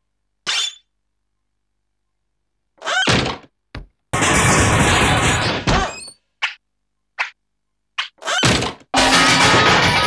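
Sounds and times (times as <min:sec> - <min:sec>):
loud cartoon crash: 0:08.3 - 0:10.0.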